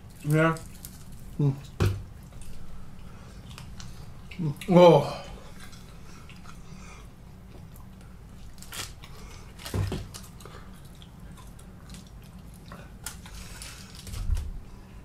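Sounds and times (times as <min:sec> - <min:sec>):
chewing chicken wings: 0:00.0 - 0:14.2.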